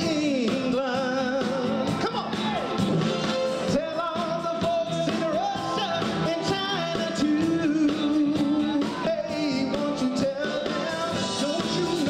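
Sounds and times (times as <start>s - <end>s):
male vocal group singing: 0.0s - 2.6s, 3.7s - 12.0s
live band playing: 0.0s - 12.0s.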